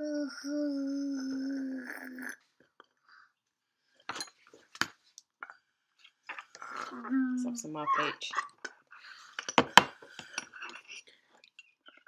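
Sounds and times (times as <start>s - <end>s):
person humming: 0.0s - 2.3s.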